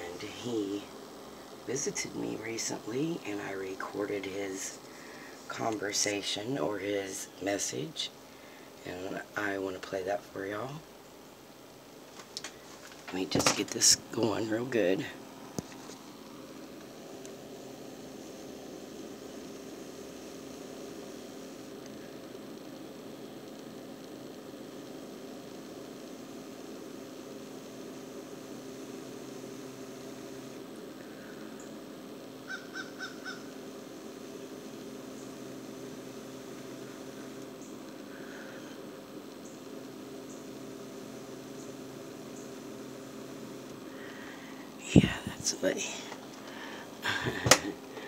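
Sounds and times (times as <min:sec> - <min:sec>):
steady low hum: 0:00.0 - 0:48.0
distant bird calls: 0:32.5 - 0:33.6.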